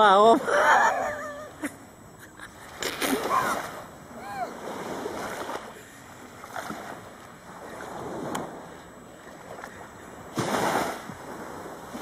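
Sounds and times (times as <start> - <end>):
surf washing on beach: 2.6 - 12.0.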